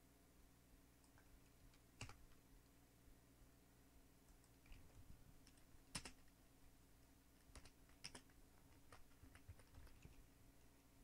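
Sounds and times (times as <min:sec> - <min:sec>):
faint keyboard typing: 0:01.0 - 0:02.8, 0:04.2 - 0:06.4, 0:07.3 - 0:10.4.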